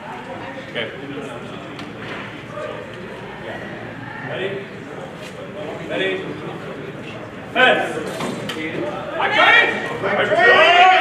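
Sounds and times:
man calling out in echoing hall: 8.9 - 11.0.

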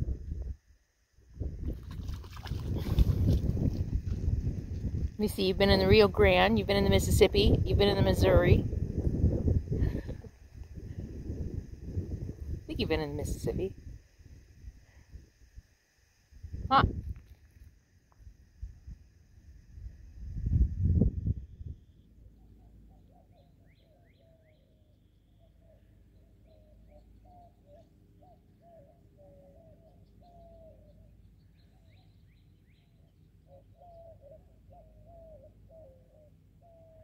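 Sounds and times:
wind rumble on microphone: 0.0 - 0.6, 1.2 - 15.6, 16.4 - 21.9
faint high bird chirps: 21.3 - 37.0.

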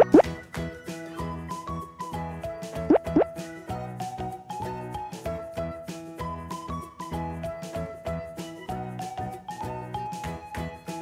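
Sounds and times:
upward-sliding bloop effect: 0.0 - 0.2, 2.9 - 3.2
cheerful background music: 0.0 - 11.0.

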